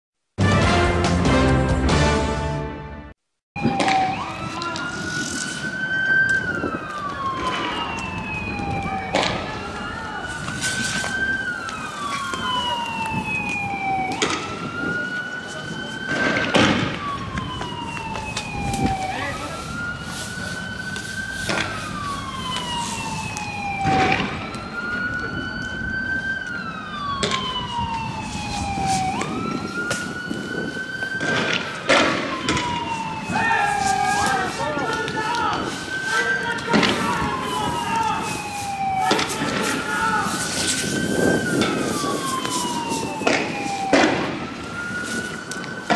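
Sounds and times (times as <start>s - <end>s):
police siren wailing: 3.6s - 45.9s.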